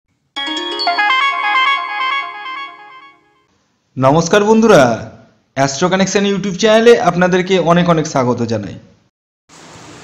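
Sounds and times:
electronic jingle of chiming notes: 0.4 - 3.5.

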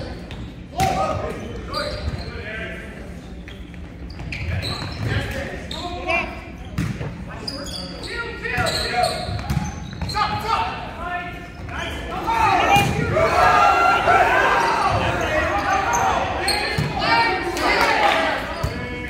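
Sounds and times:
sneakers squeaking on court: 0.0 - 0.7, 1.3 - 2.4, 3.2 - 10.4, 11.4 - 12.0, 14.6 - 17.2, 18.5 - 19.0
people shouting: 12.1 - 18.4.

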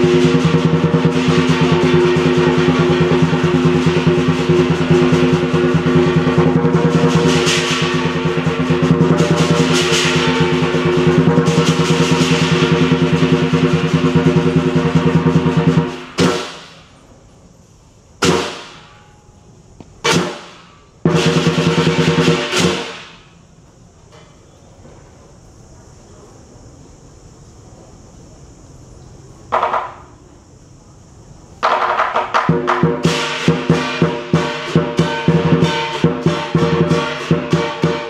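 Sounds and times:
drum roll: 0.0 - 17.0, 18.2 - 19.0, 20.0 - 23.4, 31.6 - 38.0
cymbal crashes ringing: 0.0 - 17.1, 18.2 - 23.5, 32.4 - 38.0.

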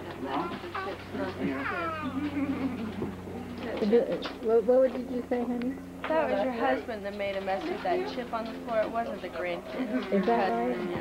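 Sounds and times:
low adult voices: 0.0 - 11.0
steady low hum: 0.0 - 11.0
toddler squealing: 1.5 - 2.2.

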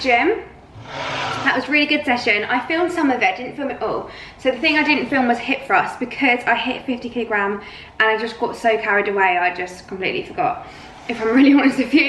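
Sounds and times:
woman talking: 0.0 - 0.6, 1.3 - 12.0.

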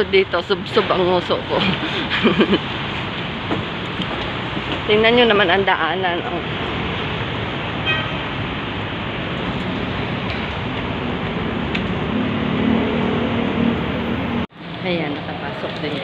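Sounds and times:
road traffic rumble: 0.0 - 16.0.

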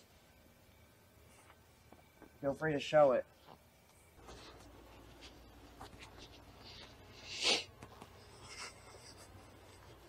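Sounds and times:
low steady hum: 0.0 - 10.0
faint scuff or rustle: 3.3 - 7.0.

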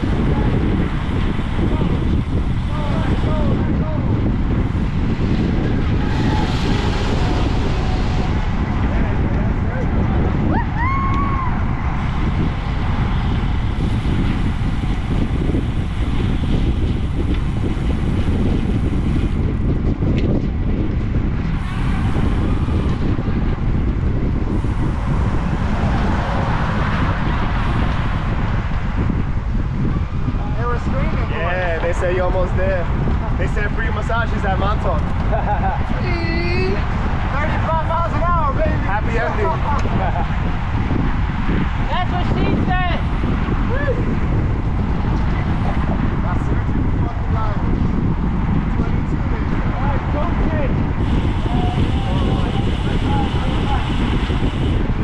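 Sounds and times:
faint voices: 0.0 - 12.1
wind buffeting microphone: 0.0 - 55.0.

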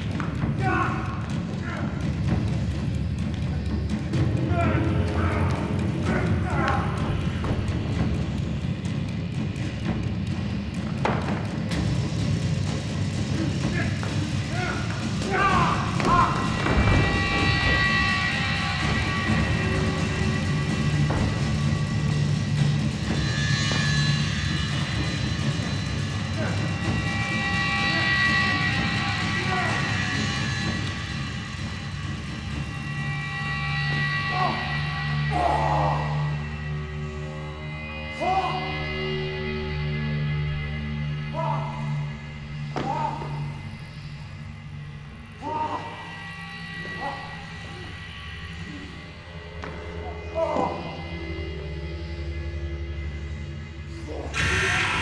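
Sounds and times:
dramatic underscore music drone: 0.0 - 55.0
actors' vocal outbursts: 13.4 - 18.0.

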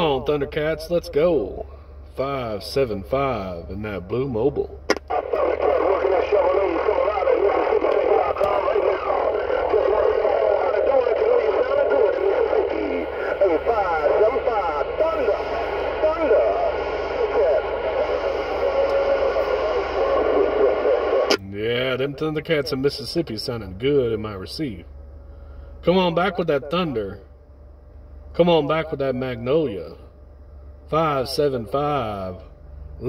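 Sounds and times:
garbled men's voices over radio: 0.0 - 24.8, 25.8 - 27.2
radio hiss: 4.9 - 23.4.

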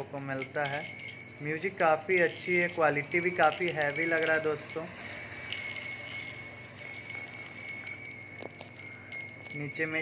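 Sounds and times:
brass wind chime ringing: 0.0 - 10.0
light chime clinks: 0.0 - 10.0.

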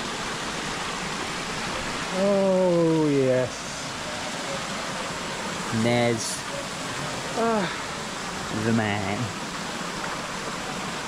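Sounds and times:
flowing water rushing: 0.0 - 11.0.

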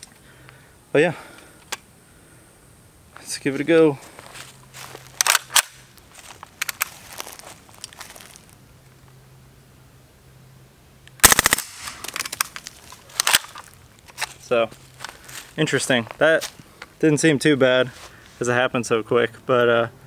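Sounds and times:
suppressed submachine gun burst: 11.2 - 12.5.

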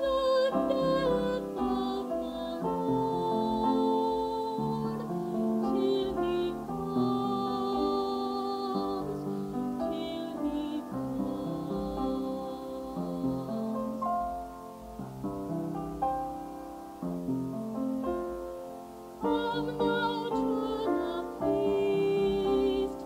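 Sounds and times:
slow devotional keyboard music: 0.0 - 23.0.

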